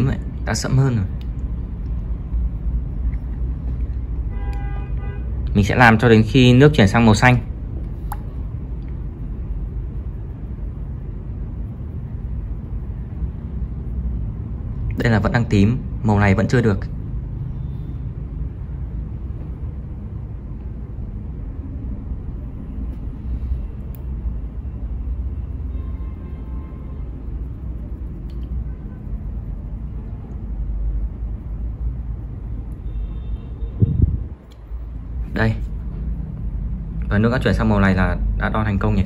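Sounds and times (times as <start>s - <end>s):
low background rumble: 0.0s - 39.0s.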